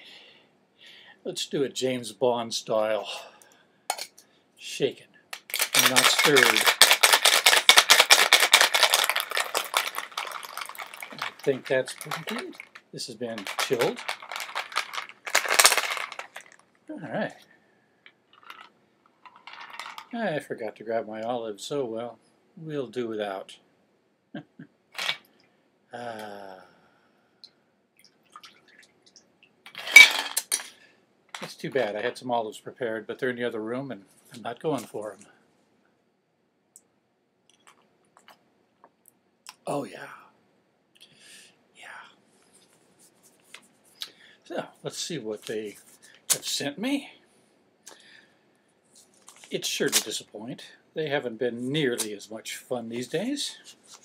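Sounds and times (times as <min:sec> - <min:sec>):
ice rattling in cocktail shaker: 0:05.4 - 0:16.6, 0:18.4 - 0:20.1
thin liquid trickle and drips: 0:28.0 - 0:29.3.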